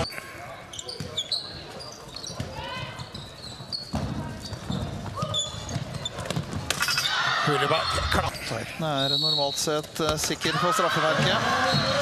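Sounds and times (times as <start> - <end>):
shoes squeaking on floor: 0.0 - 7.1, 11.1 - 12.0
voices in hall: 0.0 - 12.0.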